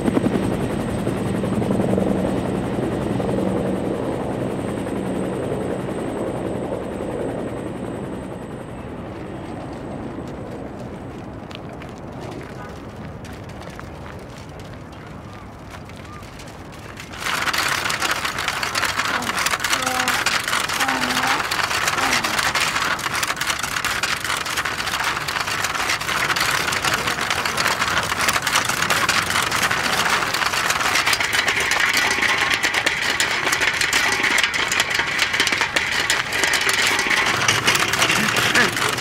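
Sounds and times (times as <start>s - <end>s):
film reel rattling over stony ground: 9.5s - 39.0s.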